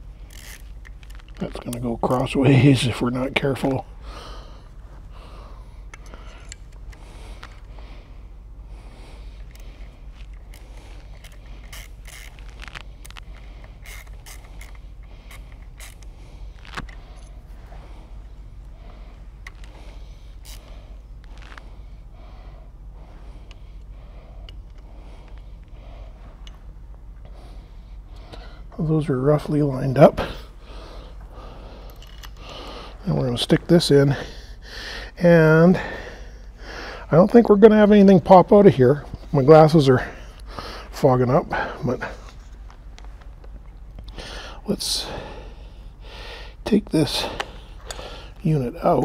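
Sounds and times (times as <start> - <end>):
steady low hum: 0.0 - 49.0
metallic clicks and scraping: 0.2 - 1.9, 9.4 - 17.4.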